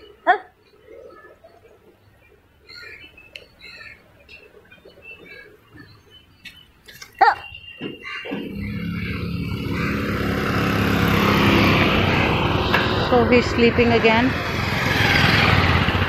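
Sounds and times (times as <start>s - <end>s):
vehicle engine running: 8.3s - 16.0s.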